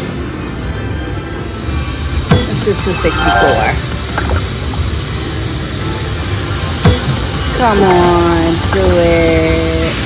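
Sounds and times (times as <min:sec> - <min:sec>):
slot machine game music: 0:02.4 - 0:03.9.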